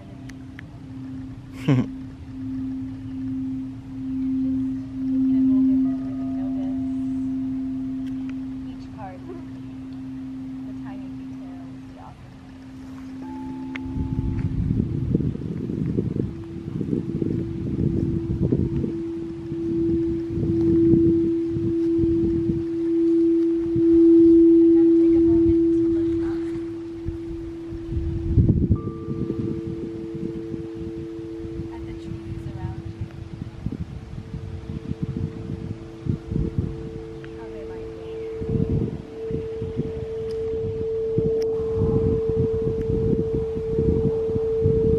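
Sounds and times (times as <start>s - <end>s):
crystal singing bowl tone: 0.0s - 44.9s
wind rumble: 0.0s - 44.9s.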